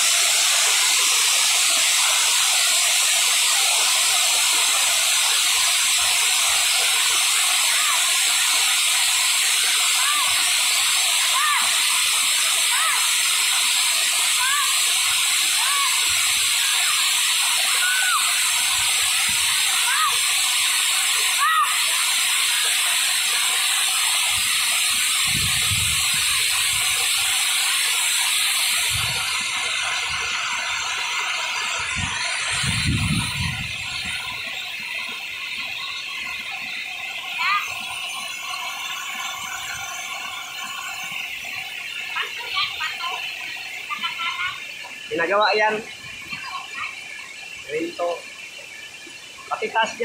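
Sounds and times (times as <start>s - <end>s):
waterfall rushing: 0.0s - 50.0s.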